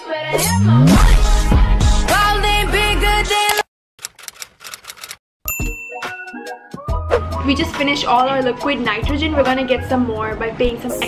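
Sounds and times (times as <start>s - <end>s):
typewriter key clicks: 4.0s - 5.2s
typewriter bell ding: 5.5s - 6.4s.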